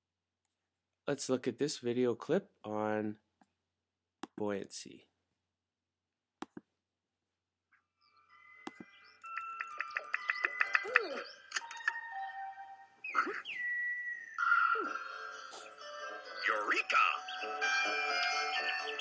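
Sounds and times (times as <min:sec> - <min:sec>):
whistle-like gliding tones: 0:08.3 - 0:19.0.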